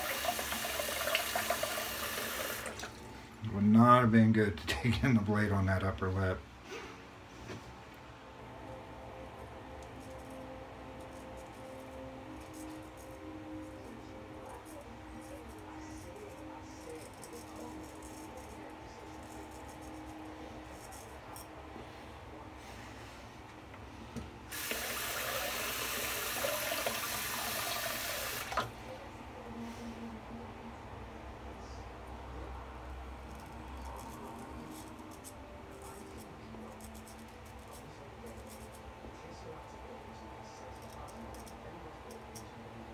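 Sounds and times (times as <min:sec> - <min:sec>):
sink tap running: 0:00.0 - 0:03.0, 0:24.5 - 0:28.7
razor scraping whiskers: 0:13.8 - 0:21.5.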